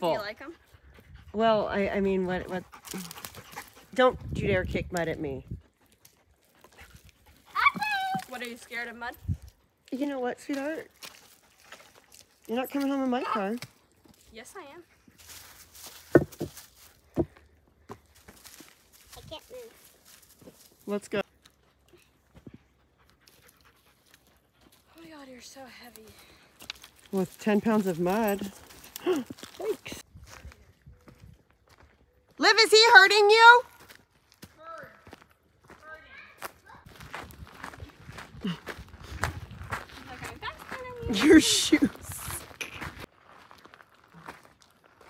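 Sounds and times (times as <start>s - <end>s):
boots squelching in mud: 10.5s - 14.3s
boot footsteps on dirt trail: 15.1s - 21.6s, 25.9s - 32.4s, 33.7s - 45.0s.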